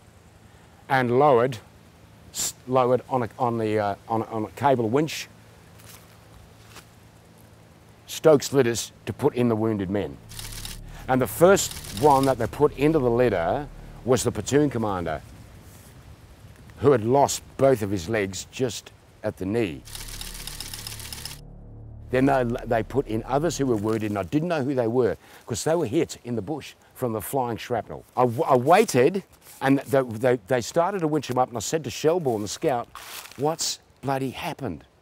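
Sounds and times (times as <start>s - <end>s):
light hiss: 0.0s - 21.4s, 28.0s - 30.4s
low hum: 7.0s - 17.6s, 19.0s - 24.9s
low music drone: 9.0s - 15.6s, 19.6s - 24.5s.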